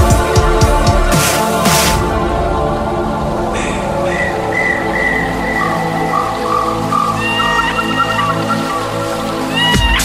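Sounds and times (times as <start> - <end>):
lower line of notes: 1.5 - 9.6
pan flute melody: 4.0 - 10.0.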